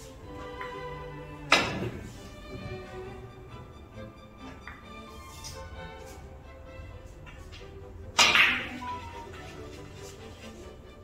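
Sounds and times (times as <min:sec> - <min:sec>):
background music: 0:00.0 - 0:11.0
billiard cue ball crack: 0:08.2 - 0:08.8.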